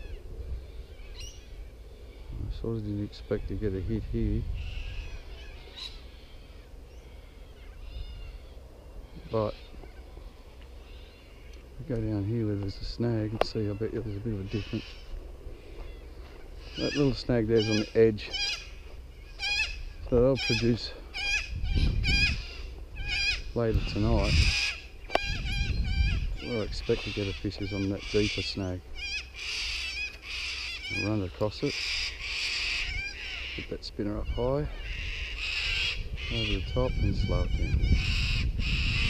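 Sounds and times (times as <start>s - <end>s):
birds chirping faintly: 0.0s - 39.0s
low rumbling noise: 0.0s - 39.0s
animal high quavering cries: 10.8s - 11.6s, 13.6s - 15.1s, 15.8s - 39.0s.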